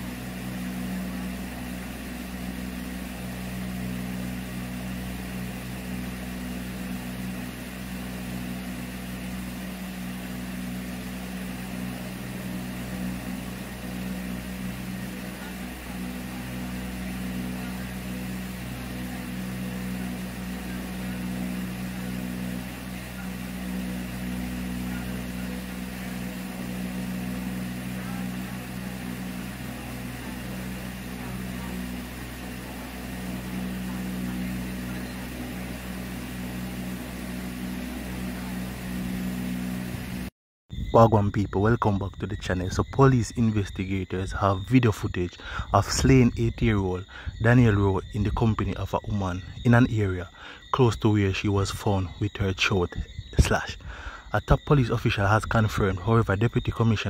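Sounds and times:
low hum: 0.0s - 57.0s.

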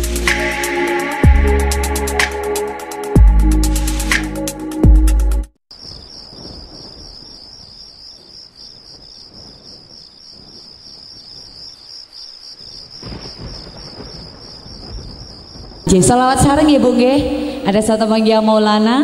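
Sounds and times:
crickets trilling: 5.7s - 16.4s
faint low thunder rumble: 5.8s - 11.8s, 12.6s - 18.3s.

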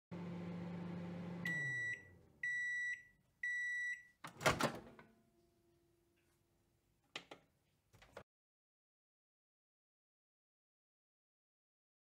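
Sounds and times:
microwave oven humming: 0.1s - 3.6s.

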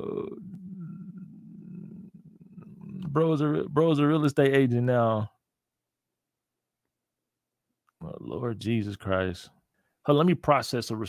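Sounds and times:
man's low throaty groan: 0.0s - 3.1s.

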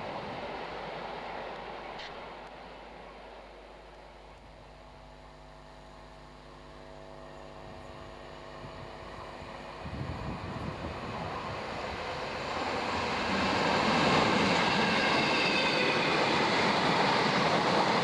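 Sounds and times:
electric train passing: 0.0s - 4.4s, 7.7s - 18.0s
train high whine: 0.0s - 18.0s.

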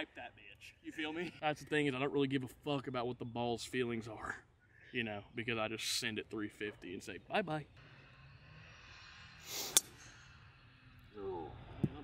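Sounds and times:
golf club whoosh: 9.4s - 10.4s
golf club striking ball: 9.7s - 10.2s.

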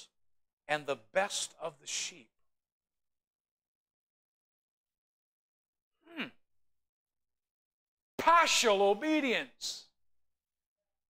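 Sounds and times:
man saying hmm: 6.0s - 6.4s.

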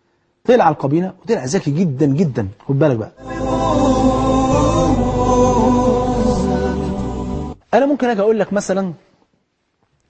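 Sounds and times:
choir-like chanting: 3.2s - 7.6s.

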